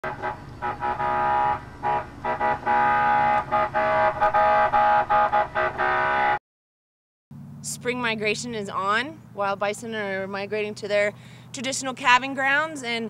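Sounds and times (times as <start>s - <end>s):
vehicle horn honking: 0.0s - 6.4s.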